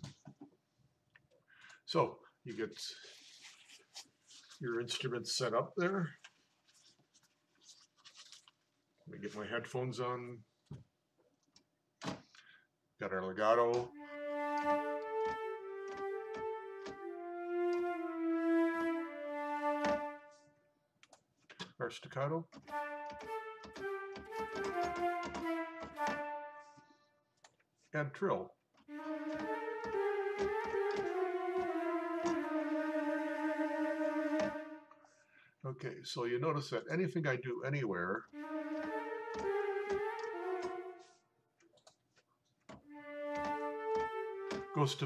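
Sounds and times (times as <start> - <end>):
rustling and scraping: 3.0 - 4.6, 6.2 - 8.6
man's voice: 9.1 - 10.4, 44.8 - 45.0
staccato flute notes: 13.7 - 20.5, 22.6 - 26.9, 28.9 - 35.3, 38.2 - 41.3, 42.8 - 45.0.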